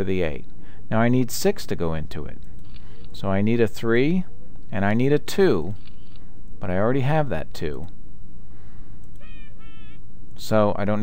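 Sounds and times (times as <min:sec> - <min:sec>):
low hum: 0:00.0 - 0:11.0
wavering electronic tones: 0:09.2 - 0:10.1.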